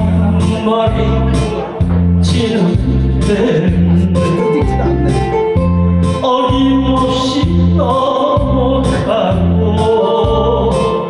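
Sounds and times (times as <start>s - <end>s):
instrumental karaoke backing track: 0.0s - 11.0s.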